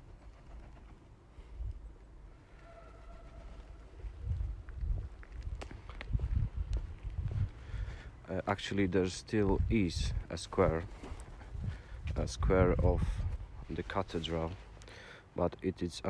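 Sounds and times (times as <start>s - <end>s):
footsteps on paving slabs: 4.3s - 8.1s, 9.4s - 12.4s.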